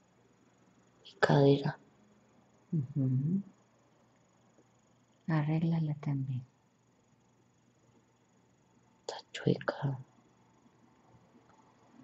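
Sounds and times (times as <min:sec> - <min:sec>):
person whispering: 0:09.1 - 0:10.1.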